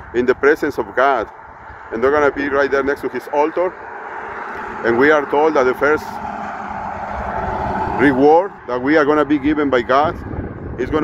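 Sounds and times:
road traffic noise: 0:00.0 - 0:11.0
car passing on nearby road: 0:01.3 - 0:10.8.

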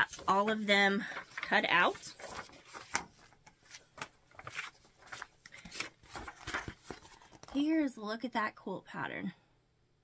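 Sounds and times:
paper crinkling: 0:00.0 - 0:07.7
paper rustling: 0:00.0 - 0:07.7.

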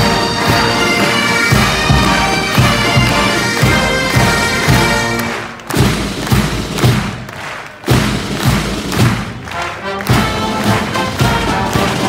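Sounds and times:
pipe band drums marching: 0:00.0 - 0:12.0.

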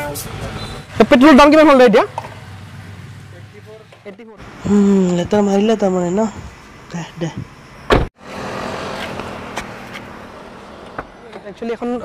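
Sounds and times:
highway traffic rush: 0:00.0 - 0:12.0.

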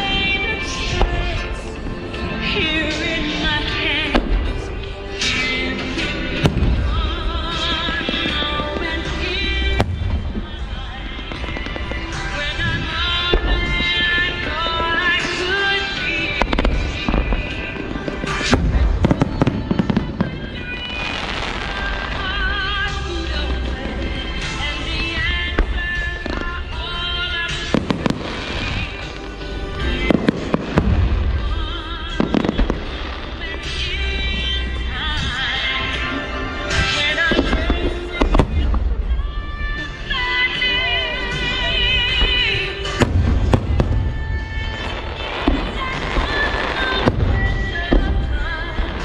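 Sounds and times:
music: 0:00.0 - 0:49.0.

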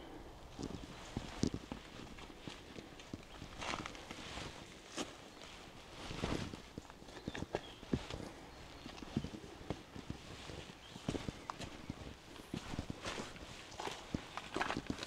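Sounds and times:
footsteps on rocky trail: 0:00.5 - 0:15.0.

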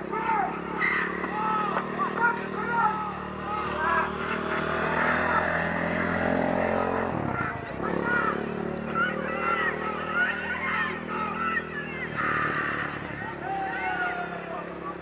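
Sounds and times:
vehicle engine passing: 0:00.0 - 0:15.0
voices: 0:00.0 - 0:15.0.

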